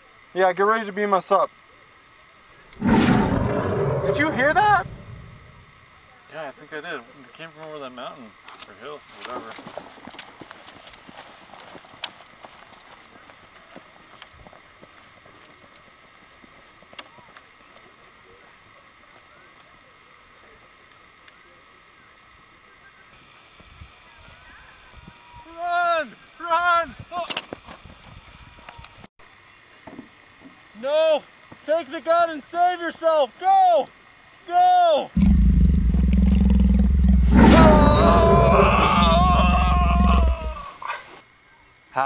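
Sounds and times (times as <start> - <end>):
sharp crack: 2.8 - 5.1
men yelling in alarm: 37.3 - 40.8.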